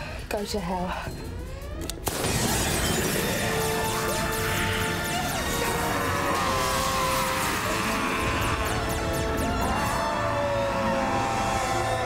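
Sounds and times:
dramatic music: 1.4s - 12.0s
glass cracking: 2.0s - 8.1s
breaking glass crash: 2.1s - 10.2s.

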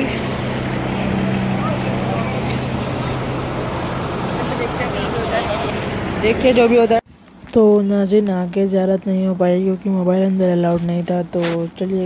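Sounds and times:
faint crowd voices: 0.0s - 7.0s.

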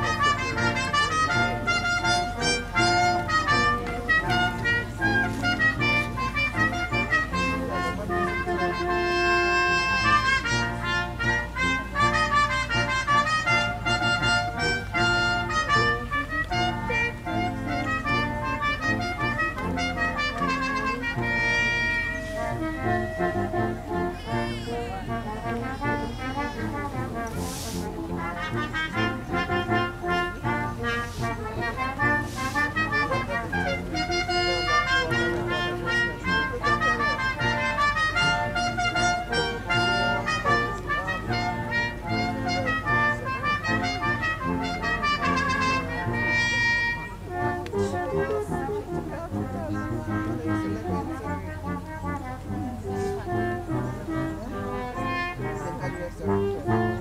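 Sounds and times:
brass instruments: 0.0s - 57.0s
orchestra playing a melody: 0.0s - 57.0s.

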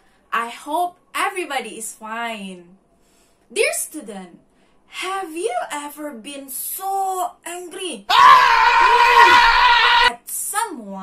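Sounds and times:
loud angry scream: 8.1s - 10.1s.

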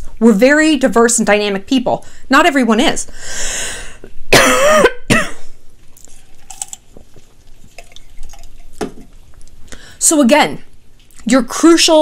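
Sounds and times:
woman clearing her throat: 4.3s - 5.5s
woman coughing: 4.3s - 5.6s.

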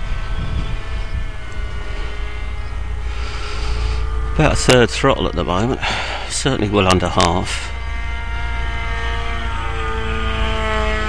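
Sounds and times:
electric motor and propeller whine: 0.0s - 11.0s
low rumble: 0.0s - 11.0s.

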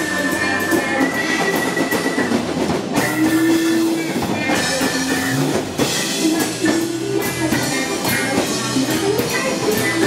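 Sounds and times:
live band playing instrumental: 0.0s - 10.0s.

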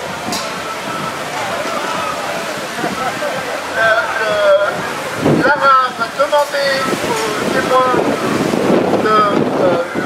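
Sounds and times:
crowd ambience: 0.0s - 10.0s.

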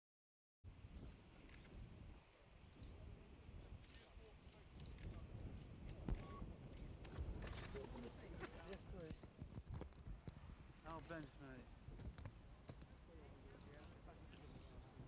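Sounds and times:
sharp clicks and knocks: 12.0s - 12.9s.

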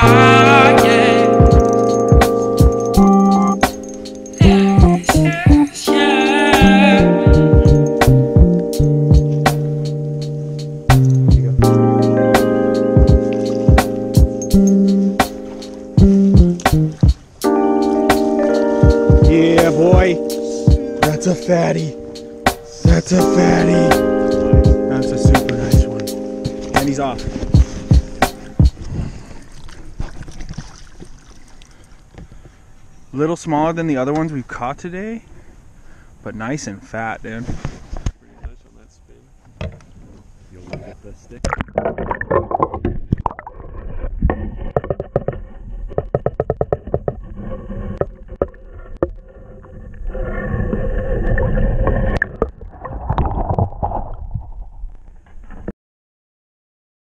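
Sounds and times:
muffled underwater water swirling: 25.4s - 32.5s
rustling: 25.5s - 33.0s, 37.2s - 41.2s.

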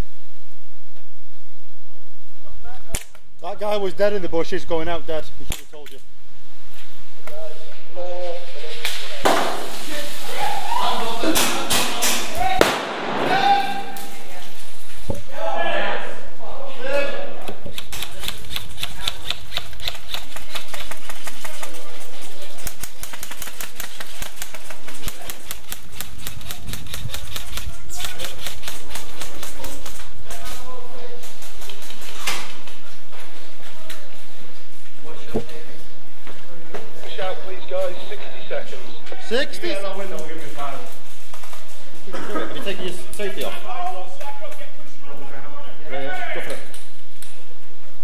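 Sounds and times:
raised voices: 9.9s - 14.6s
airsoft guns firing: 11.4s - 14.4s.

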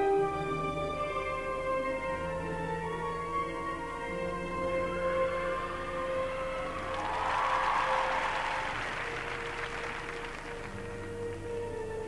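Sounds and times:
accompaniment music: 0.0s - 12.0s
audience applauding: 6.6s - 11.0s.

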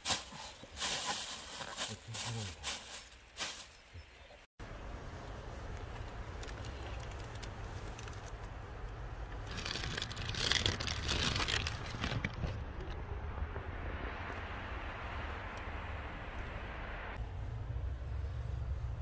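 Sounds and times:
plastic sheeting crinkling: 0.0s - 3.8s, 9.5s - 12.3s
steady low rumble: 4.6s - 19.0s.

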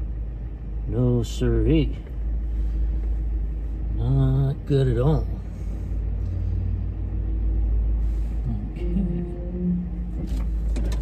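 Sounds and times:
car engine rumble from cabin: 0.0s - 11.0s
faint steady hum: 0.0s - 11.0s.

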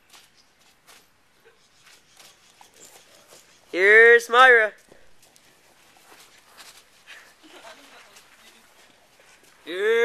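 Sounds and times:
faint rustles and clicks: 0.0s - 3.8s, 4.8s - 9.7s.

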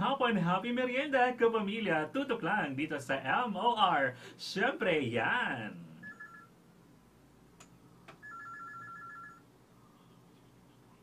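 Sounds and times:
electronic telephone ring: 6.0s - 6.5s, 8.2s - 9.5s.

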